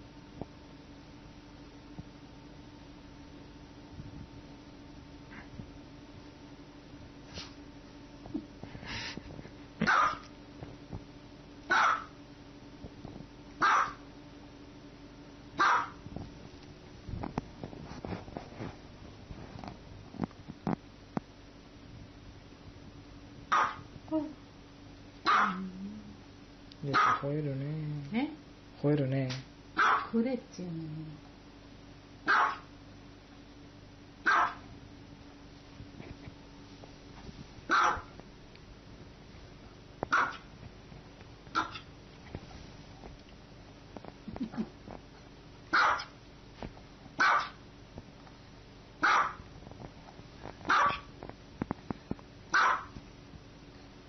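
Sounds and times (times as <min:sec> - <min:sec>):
dog barking: 0:09.8 - 0:10.3, 0:11.7 - 0:12.2, 0:13.6 - 0:14.0, 0:15.6 - 0:16.0, 0:23.5 - 0:23.9, 0:25.2 - 0:25.6, 0:26.9 - 0:27.3, 0:29.8 - 0:30.2, 0:32.2 - 0:32.7, 0:34.2 - 0:34.7, 0:37.7 - 0:38.1, 0:40.1 - 0:40.5, 0:41.5 - 0:41.9, 0:45.7 - 0:46.1, 0:47.2 - 0:47.6, 0:49.0 - 0:49.4, 0:50.7 - 0:51.1, 0:52.5 - 0:53.0.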